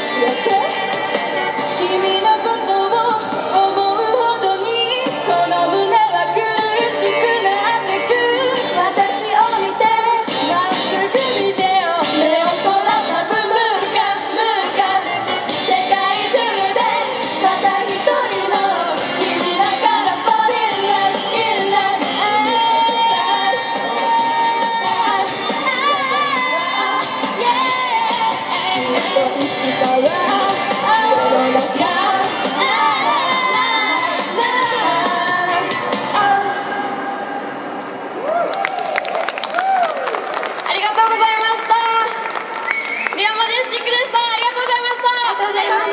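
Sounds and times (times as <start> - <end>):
loud pop music: 0.0 - 37.0, 44.9 - 45.9
women singing into microphones: 0.0 - 37.3, 44.7 - 45.9.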